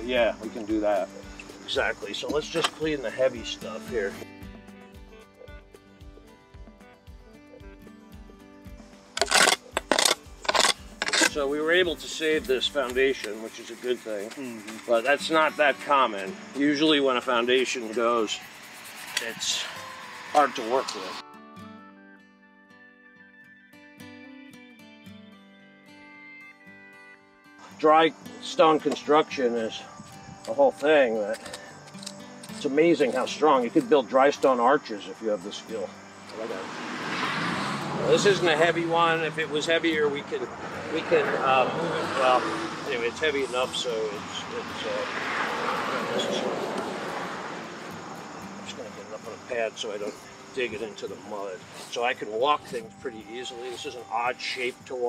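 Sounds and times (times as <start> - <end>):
soft background music: 0.0 - 55.0
shovel scraping into soil: 9.2 - 15.4, 17.7 - 20.4
car driving past: 18.4 - 21.2, 35.8 - 48.7.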